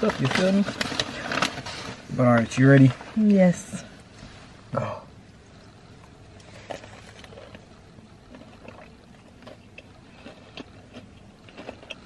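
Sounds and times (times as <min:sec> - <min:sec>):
low steady hum: 0:00.0 - 0:12.0
people chewing crispy food: 0:06.0 - 0:12.0.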